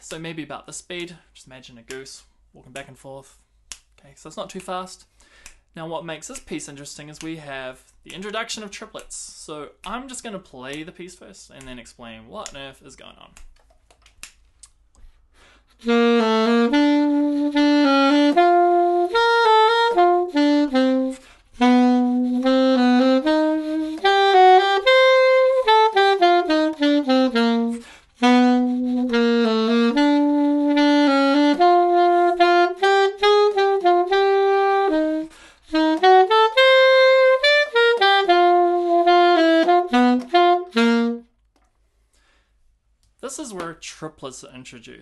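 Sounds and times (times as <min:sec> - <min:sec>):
alto saxophone melody: 0:15.7 - 0:41.4.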